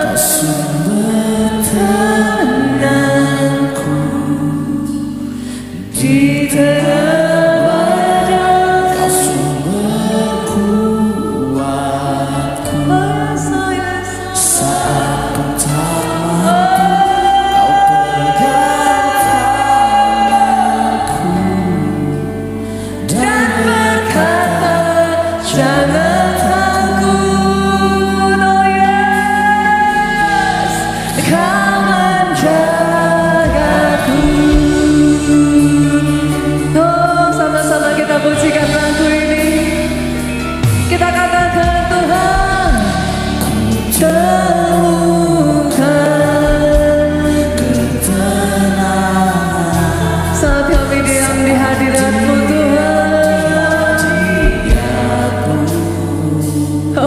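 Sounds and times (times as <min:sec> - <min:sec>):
backing voices singing: 0:00.0 - 0:57.0
instrumental accompaniment: 0:00.0 - 0:57.0
woman singing worship song: 0:00.0 - 0:57.0.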